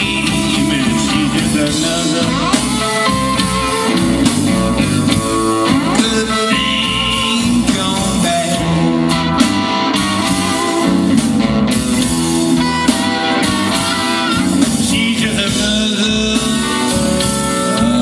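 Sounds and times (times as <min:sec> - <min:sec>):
bass guitar: 0:00.0 - 0:18.0
electric guitar: 0:00.0 - 0:18.0
live blues band: 0:00.0 - 0:18.0.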